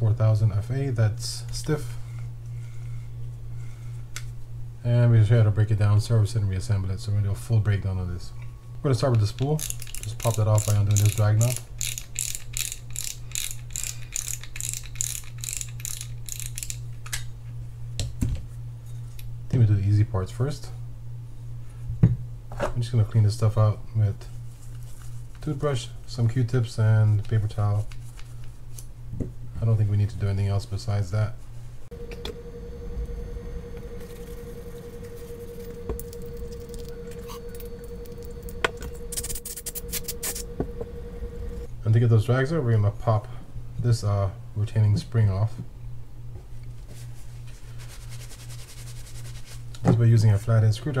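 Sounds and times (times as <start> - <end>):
steady hum: 0.0 - 45.3
fishing reel drag clicking: 9.6 - 16.8
metal spool being turned: 9.6 - 16.8
quick scratchy strokes: 39.1 - 40.5
cotton swab scrubbing: 47.5 - 49.7.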